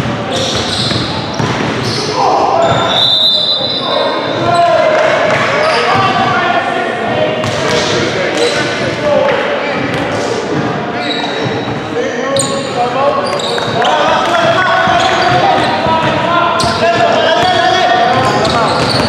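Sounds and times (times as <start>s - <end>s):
sneakers squeaking: 0.0s - 6.4s, 7.4s - 19.0s
players' voices echoing: 0.0s - 19.0s
basketball bouncing on wooden floor: 14.4s - 19.0s.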